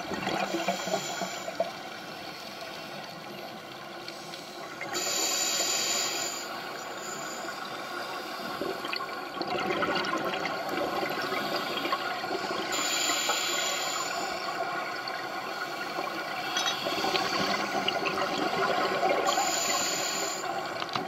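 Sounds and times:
air bubbles gurgling underwater: 0.0 - 1.7, 8.7 - 12.7, 16.8 - 19.4.

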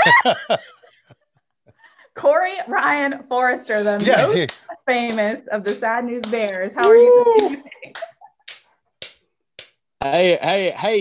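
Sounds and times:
breathy laughter: 0.0 - 2.0.

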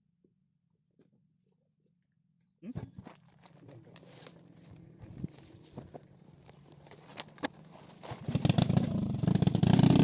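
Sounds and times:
footsteps in dry leaves: 3.0 - 9.1.

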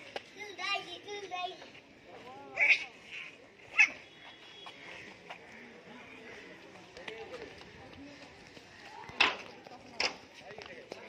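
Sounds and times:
faint indistinct voices: 0.0 - 11.0.

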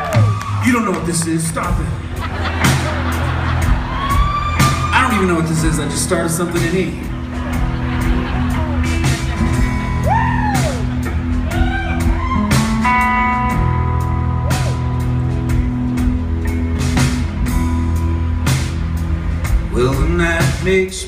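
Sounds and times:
electric guitars sustained notes: 0.0 - 21.0.

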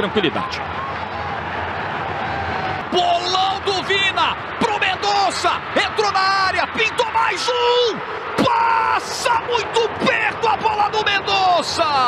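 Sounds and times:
man commentating: 2.9 - 12.0.

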